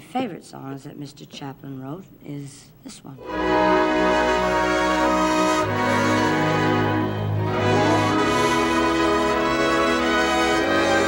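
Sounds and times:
orchestra playing chords: 3.2s - 11.0s.

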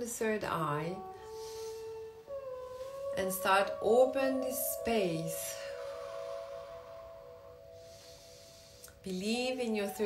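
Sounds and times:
soft held meditation tone: 0.0s - 10.0s.

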